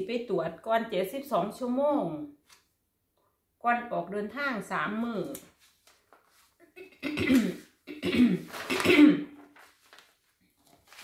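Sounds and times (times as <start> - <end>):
woman coughing: 6.8 - 9.4.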